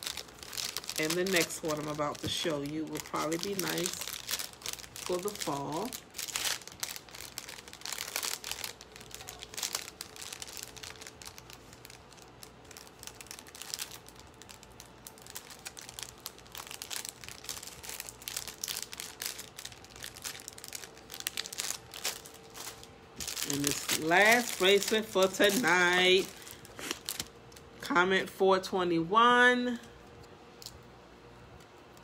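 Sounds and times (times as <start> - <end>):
packaging crinkling and rustling: 0.0 - 27.9.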